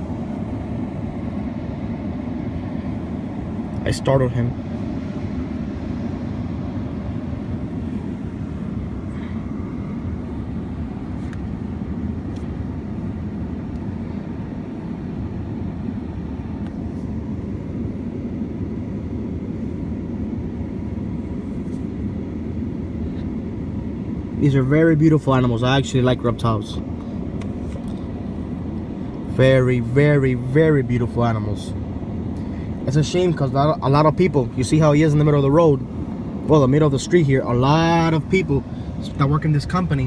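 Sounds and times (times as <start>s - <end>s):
low rumble of vehicle noise: 0.0s - 40.0s.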